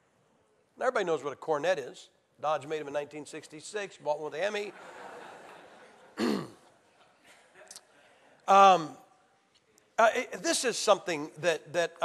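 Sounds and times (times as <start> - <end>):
man clearing his throat: 6.2 - 6.7.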